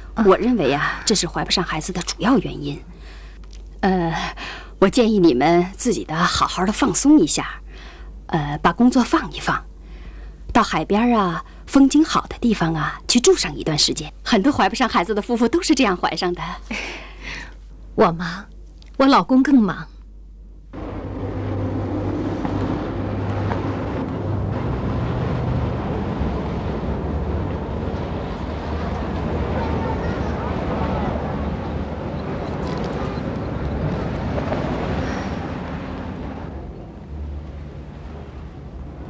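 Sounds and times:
traffic noise: 0:20.7 - 0:39.0
indistinct voices: 0:28.7 - 0:33.9.

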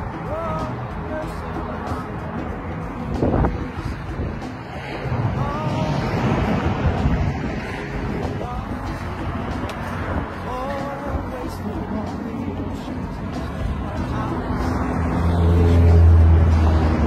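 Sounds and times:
wind buffeting microphone: 0:02.8 - 0:14.5.

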